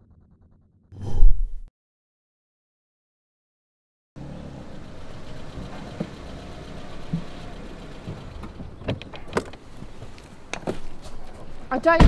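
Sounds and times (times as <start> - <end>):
low parked car background: 4.2 - 12.0
car door and keys clicking: 8.8 - 11.0.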